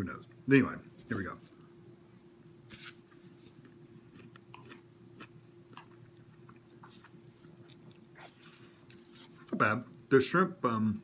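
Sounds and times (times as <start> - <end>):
steady low hum: 0.0 - 11.0
chewing clicks: 4.1 - 8.4.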